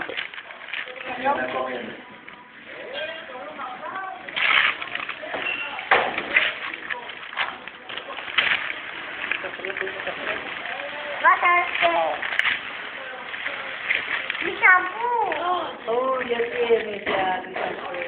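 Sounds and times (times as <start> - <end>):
wrapping paper crinkling and tearing: 0.0 - 18.0.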